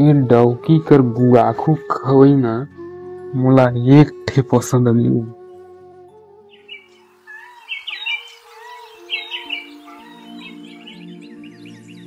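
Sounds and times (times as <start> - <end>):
background music with held notes: 0.0 - 12.0
high bird chirping: 6.5 - 12.0.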